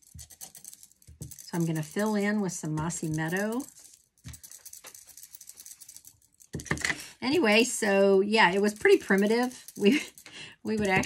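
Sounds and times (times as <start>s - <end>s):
metal bracelets jingling: 0.0s - 6.7s, 7.4s - 11.0s.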